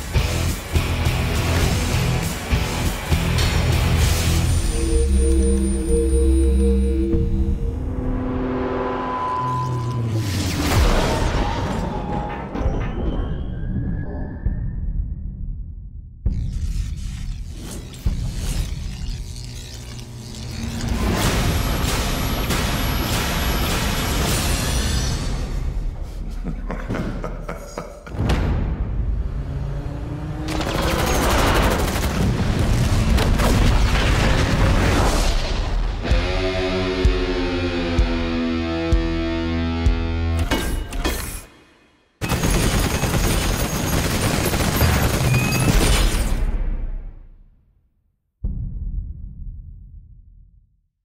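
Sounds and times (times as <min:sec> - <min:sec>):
dense burst of music and effects: 0:00.0 - 0:13.0, 0:14.7 - 0:26.0.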